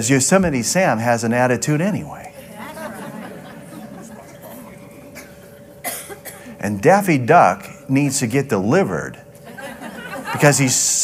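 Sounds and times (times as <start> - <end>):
murmur of audience: 2.3 - 6.6
person coughing: 4.4 - 6.6.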